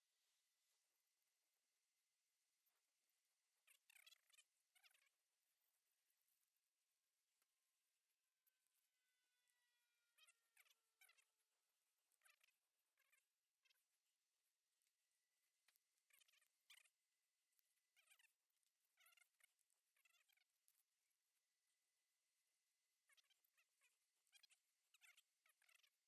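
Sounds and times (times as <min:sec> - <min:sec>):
faint high-pitched chirps: 0:00.0 - 0:26.0.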